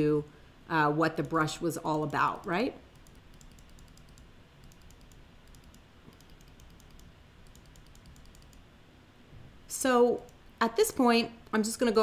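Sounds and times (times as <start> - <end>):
faint computer mouse clicking: 1.9 - 8.7.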